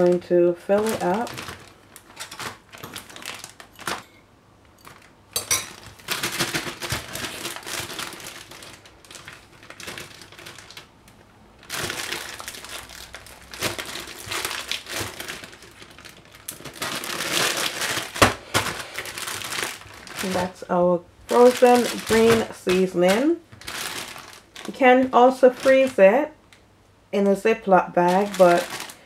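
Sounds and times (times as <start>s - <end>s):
plastic bag crinkling: 0.0s - 4.2s, 4.8s - 26.4s, 27.2s - 29.0s.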